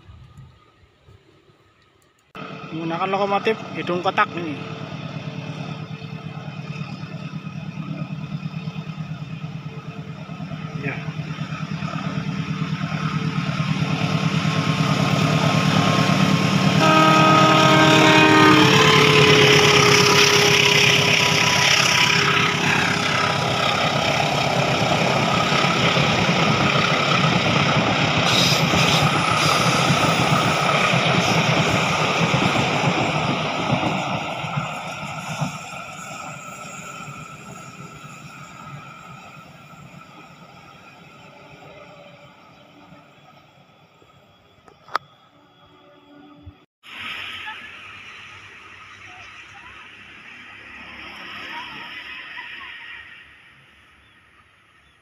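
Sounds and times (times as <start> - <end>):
diesel locomotive running: 0.1 - 54.9
train coaches rumbling on rails: 2.4 - 55.0
train horn: 16.6 - 23.4.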